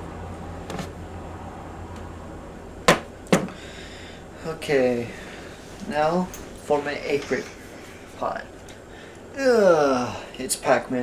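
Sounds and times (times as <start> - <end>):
low hum: 0.0 - 10.4.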